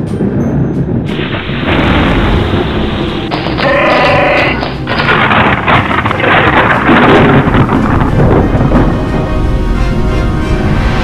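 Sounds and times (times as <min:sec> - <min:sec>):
strong wind: 0:00.0 - 0:11.0.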